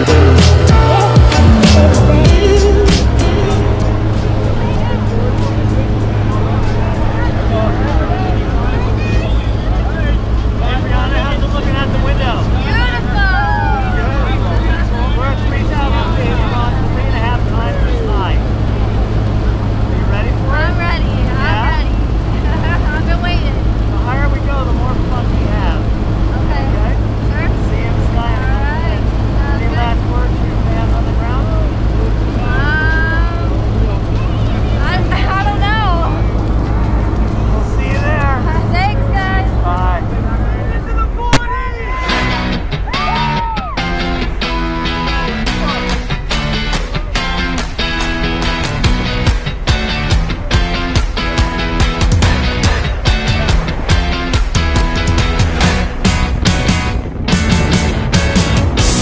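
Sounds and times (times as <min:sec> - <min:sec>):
people talking: 0:01.0 - 0:43.8, 0:44.4 - 0:58.5
plane engine and propeller drone: 0:02.0 - 0:59.0.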